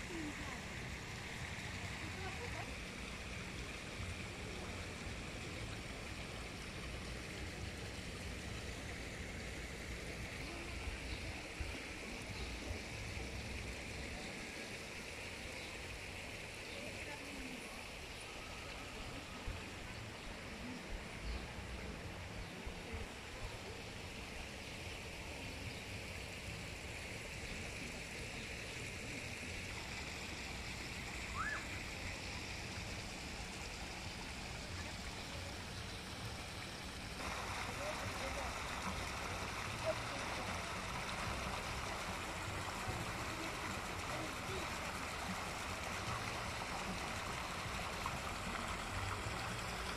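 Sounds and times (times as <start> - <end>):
water gushing into pond: 0.0 - 49.9.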